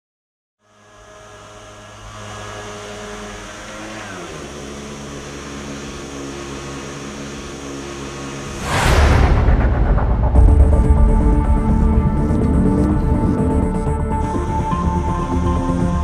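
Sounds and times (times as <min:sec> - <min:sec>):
small two-stroke engine running: 0:00.6 - 0:08.5, 0:12.1 - 0:16.0.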